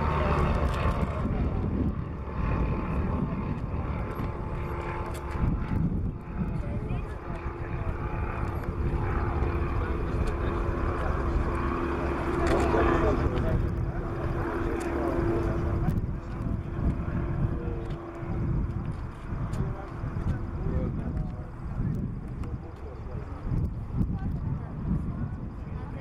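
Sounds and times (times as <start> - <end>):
light aircraft propeller drone: 0.0 - 26.0
low outdoor rumble: 0.0 - 26.0.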